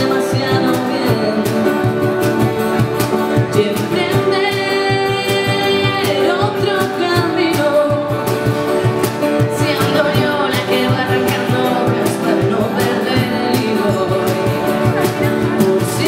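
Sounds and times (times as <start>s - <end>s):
cajon beat: 0.0s - 16.0s
keyboard: 0.0s - 16.0s
strummed acoustic guitars: 0.0s - 16.0s
woman singing: 0.0s - 16.0s.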